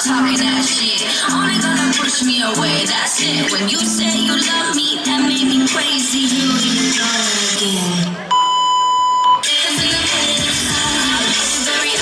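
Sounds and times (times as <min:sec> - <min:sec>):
dance music: 0:00.0 - 0:08.3, 0:09.4 - 0:12.0
steady electronic beep: 0:08.3 - 0:09.5.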